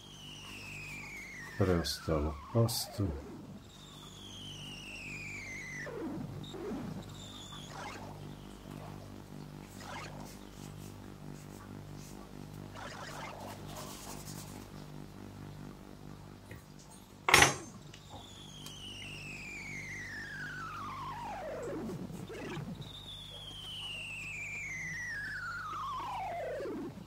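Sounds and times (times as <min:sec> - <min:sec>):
descending whistle-like tones: 0:00.0 - 0:09.0, 0:18.0 - 0:27.0
low pulsing hum: 0:00.0 - 0:27.0.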